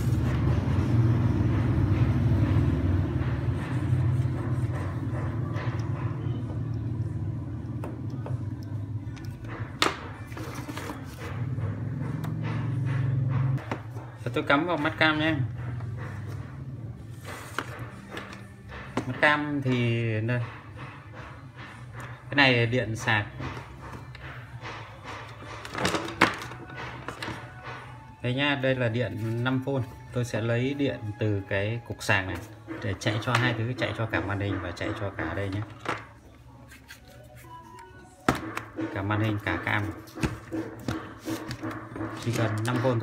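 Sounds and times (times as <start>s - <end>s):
faint background music: 0.0s - 43.0s.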